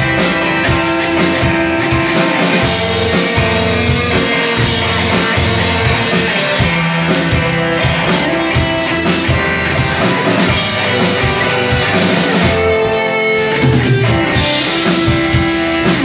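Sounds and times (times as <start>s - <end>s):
drum kit: 0.0s - 16.0s
electric guitars: 0.0s - 16.0s.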